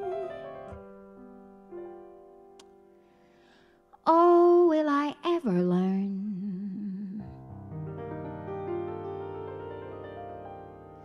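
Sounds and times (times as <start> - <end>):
piano chords: 0.0 - 11.0
woman singing: 4.0 - 7.4.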